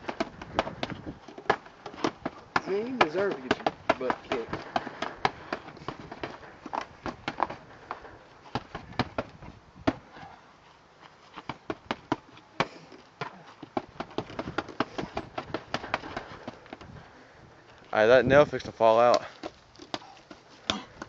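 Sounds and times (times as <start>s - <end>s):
fists striking punching bag: 0.0s - 10.1s, 11.5s - 16.6s.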